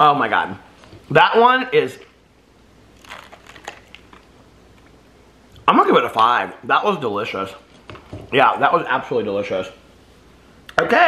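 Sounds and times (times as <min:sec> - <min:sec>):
plastic cup crinkling: 0:02.9 - 0:05.0.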